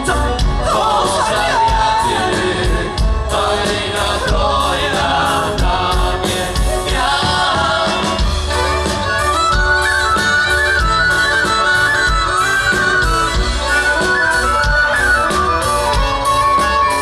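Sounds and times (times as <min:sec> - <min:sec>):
double bass: 0:00.0 - 0:17.0
fiddle melody: 0:00.0 - 0:17.0.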